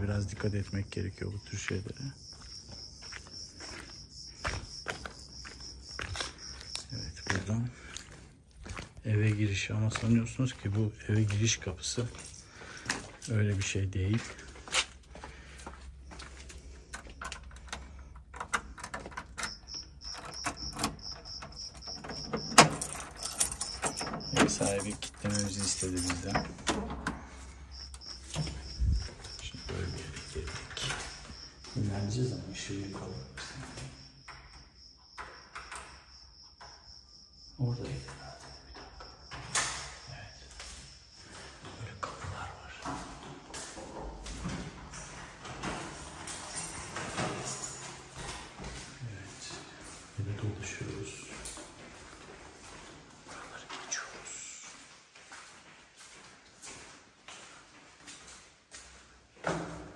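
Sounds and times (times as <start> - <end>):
door opening: 16.7 - 36.8, 37.9 - 40.8, 41.6 - 49.0
keys clicking in door lock: 16.8 - 27.3, 44.8 - 48.5.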